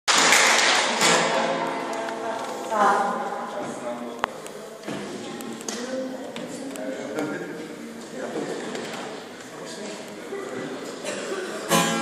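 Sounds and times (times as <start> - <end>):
acoustic guitar strummed: 1.0 - 2.6, 11.7 - 12.0.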